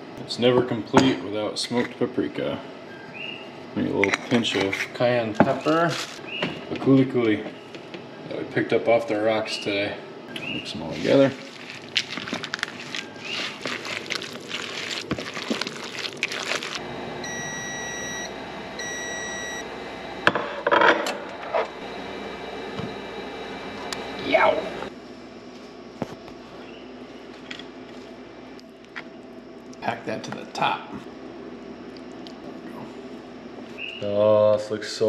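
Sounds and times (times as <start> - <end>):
spatula scraping plastic bowl: 10.6 - 16.8
toaster oven fan humming: 16.7 - 35.0
electronic beeps: 17.2 - 19.6.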